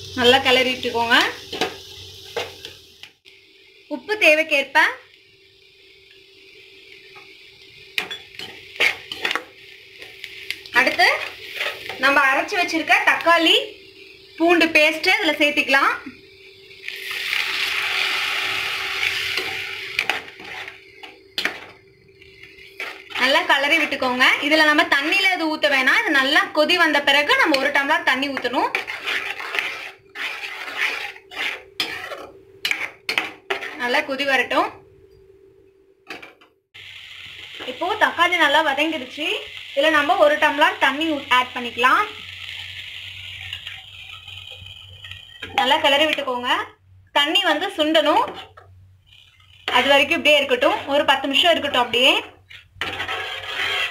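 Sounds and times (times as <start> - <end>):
food sizzling in hot oil: 0.0 - 34.8, 36.7 - 53.9
ladle stirring in pan: 8.0 - 12.2, 16.8 - 24.6, 27.3 - 34.0, 52.4 - 53.9.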